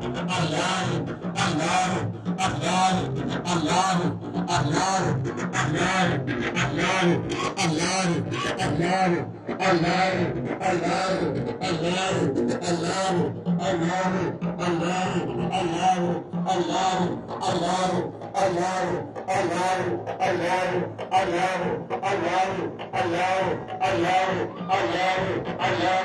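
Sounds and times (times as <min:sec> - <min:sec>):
crowd of men chanting: 0:00.4 - 0:02.9, 0:07.6 - 0:26.0.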